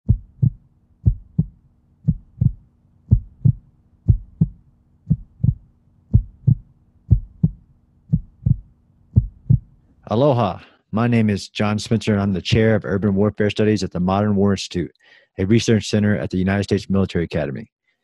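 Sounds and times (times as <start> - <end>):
heartbeat thumps: 0.0 - 9.8
faint steady hum: 0.1 - 17.6.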